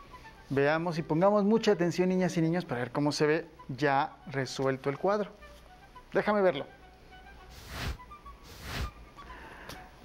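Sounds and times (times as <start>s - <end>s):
faint scattered musical notes: 0.0s - 10.0s.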